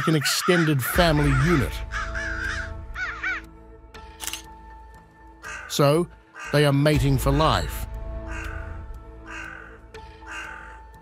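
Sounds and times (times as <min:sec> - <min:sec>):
crows cawing: 0:00.0 - 0:03.6, 0:05.2 - 0:11.0
background music with sustained tones: 0:00.0 - 0:11.0.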